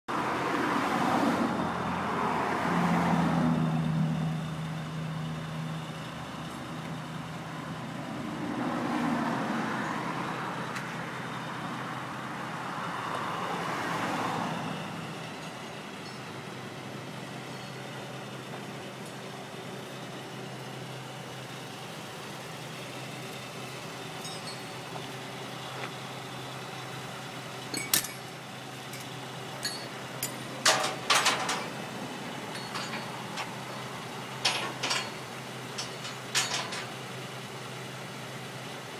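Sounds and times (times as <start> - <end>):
low steady engine drone: 0.1 - 38.9
vehicles passing: 0.1 - 38.9.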